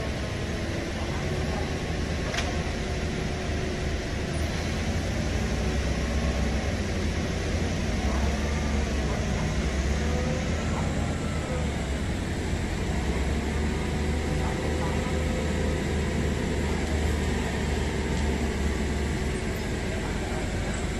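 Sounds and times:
forklift engine running: 0.0 - 20.9.

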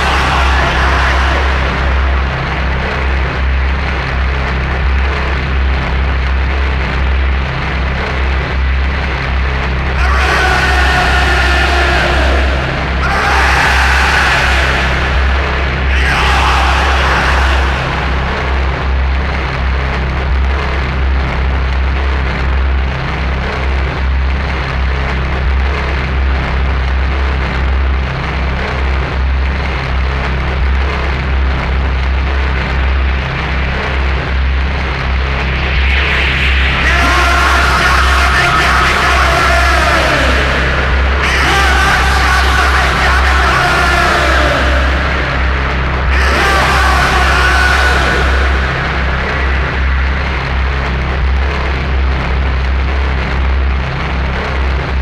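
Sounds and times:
thick haze of noise: 0.0 - 21.2, 32.0 - 55.0
distorted shouted vocals: 0.0 - 55.0
heavy wavering low drone: 0.0 - 55.0.

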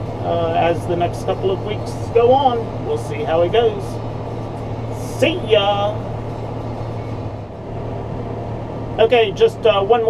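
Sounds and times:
tractor diesel engine running: 0.0 - 10.0.

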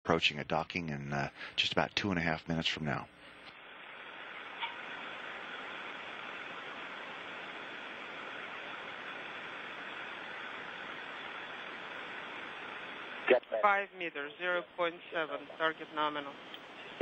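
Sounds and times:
radio static hiss: 0.1 - 17.0.

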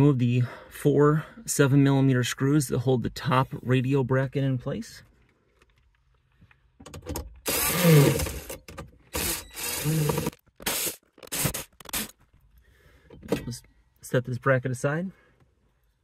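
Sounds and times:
screwdriver tool bursts: 7.5 - 12.2.

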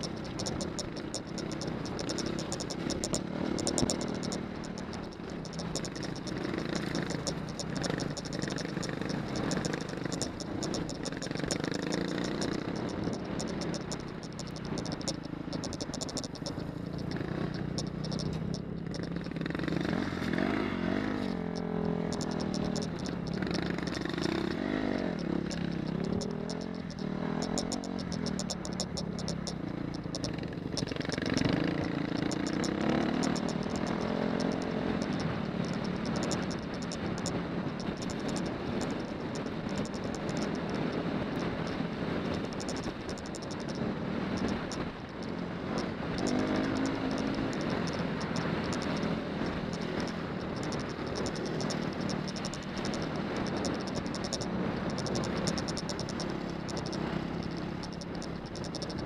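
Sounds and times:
stones and bike clattering: 0.0 - 19.4
motorcycle engine revving: 0.0 - 59.0.

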